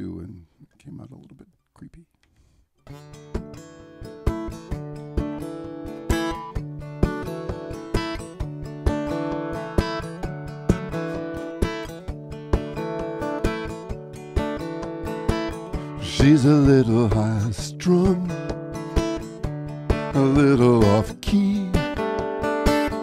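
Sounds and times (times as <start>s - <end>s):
acoustic guitar strumming and picking: 2.8s - 23.0s.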